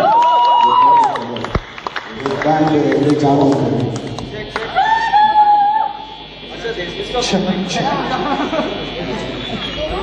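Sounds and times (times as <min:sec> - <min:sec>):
crowd chatter: 0:01.5 - 0:10.0
man speaking into microphone: 0:02.2 - 0:04.6.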